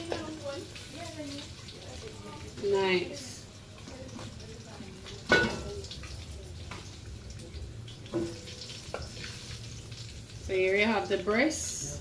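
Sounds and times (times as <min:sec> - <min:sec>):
chicken frying in oil: 0:00.0 - 0:12.0.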